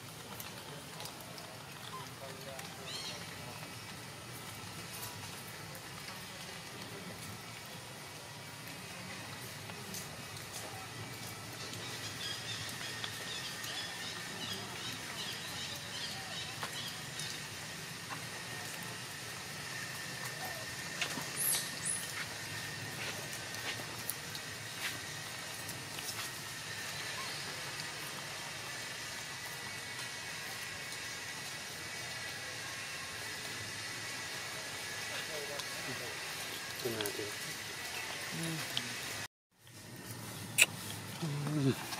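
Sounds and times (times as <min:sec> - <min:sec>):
outdoor background hiss: 0:00.0 - 0:41.9.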